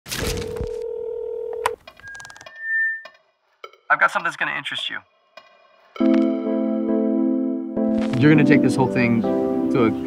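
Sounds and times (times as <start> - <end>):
higher electronic beep: 2.0 - 3.2.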